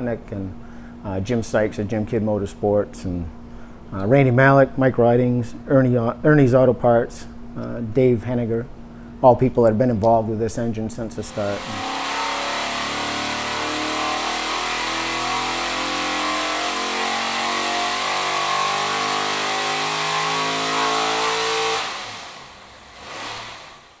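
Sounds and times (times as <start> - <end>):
engine running hard on dynamometer: 11.3 - 24.0.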